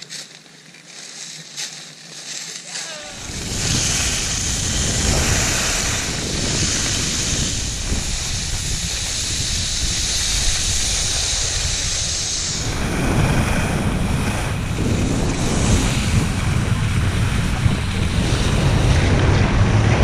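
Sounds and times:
skis sliding over snow: 0.0 - 20.0
wind buffeting microphone: 3.1 - 20.0.

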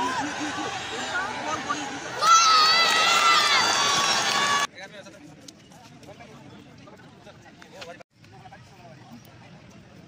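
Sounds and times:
football crowd shouting and cheering: 0.0 - 4.7.

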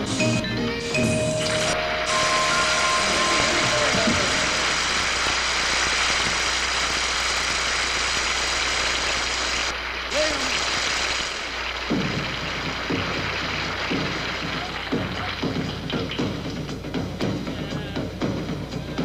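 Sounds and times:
drum kit strokes: 0.0 - 7.7
audience applauding: 1.3 - 16.7
voices calling out: 1.5 - 5.0.

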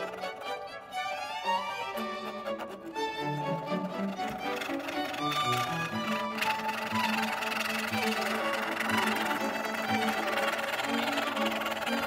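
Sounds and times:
bowed strings music: 0.0 - 12.0.

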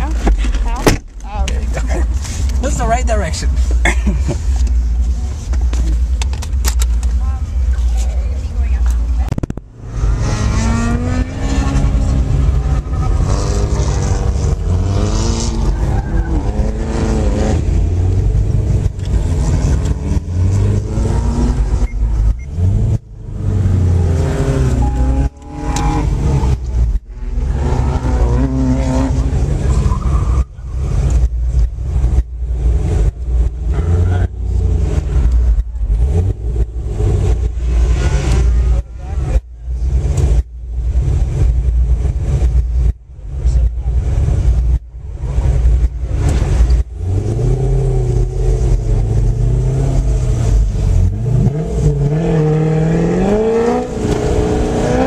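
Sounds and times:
car engine revving: 0.0 - 55.0.

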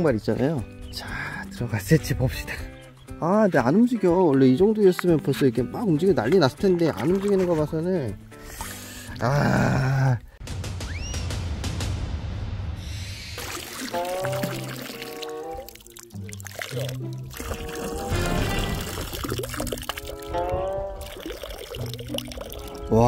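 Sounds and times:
background music: 0.0 - 23.0
water pouring from plastic bottle: 13.4 - 23.0.

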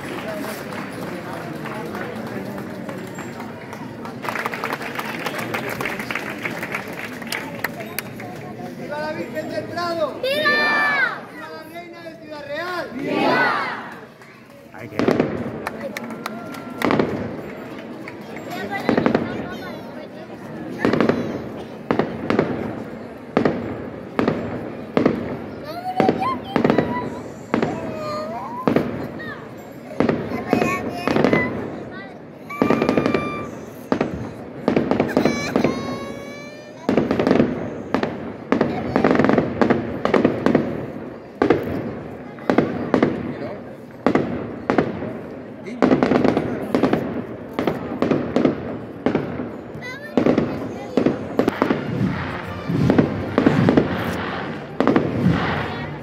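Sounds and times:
crowd talking and cheering: 0.0 - 56.0
fireworks bangs: 14.8 - 56.0
fireworks whistling: 26.0 - 31.6, 32.5 - 36.2, 48.4 - 56.0.

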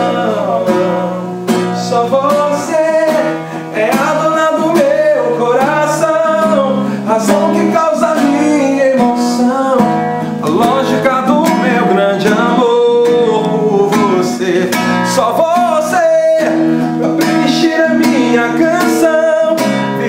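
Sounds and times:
acoustic guitar strumming: 0.0 - 20.0
man singing: 0.0 - 20.0.

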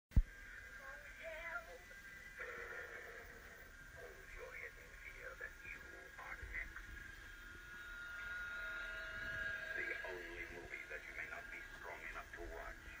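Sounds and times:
muffled television voices: 0.2 - 13.0
steady high thin tone: 6.2 - 12.9.

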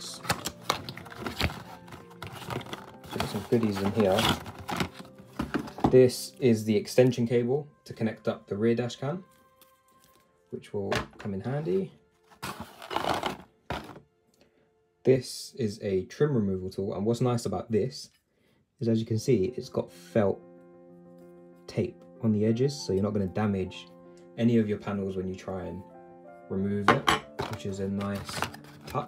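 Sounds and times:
quiet background music: 0.0 - 29.0
cardboard box being opened: 0.2 - 6.0, 11.8 - 14.0, 27.4 - 29.0.

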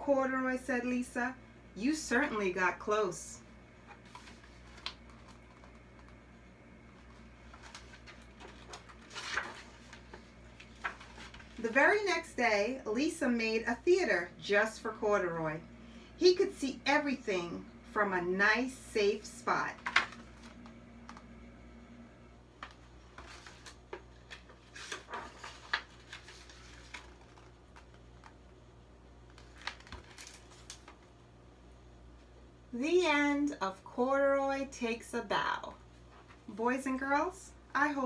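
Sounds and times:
book pages rustling: 3.8 - 6.2, 6.9 - 11.8, 19.8 - 21.2, 22.6 - 28.6, 29.2 - 31.1
low hum: 14.2 - 23.3.

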